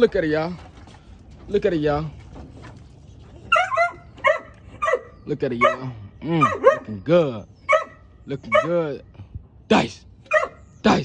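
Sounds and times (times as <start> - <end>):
puppy yipping: 3.5 - 5.8, 6.4 - 6.9, 7.7 - 8.7, 10.3 - 10.6.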